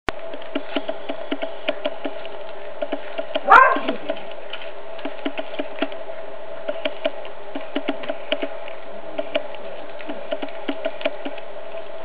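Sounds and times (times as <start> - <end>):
steady hum: 0.1 - 12.0.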